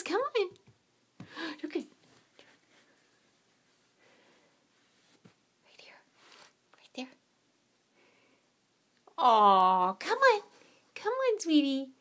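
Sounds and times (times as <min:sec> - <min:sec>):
person whispering: 0:05.6 - 0:06.1, 0:06.7 - 0:07.2.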